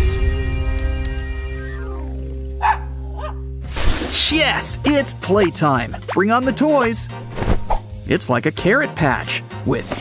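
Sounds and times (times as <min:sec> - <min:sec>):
background music: 0:00.0 - 0:10.0
small dog barking: 0:02.6 - 0:03.4.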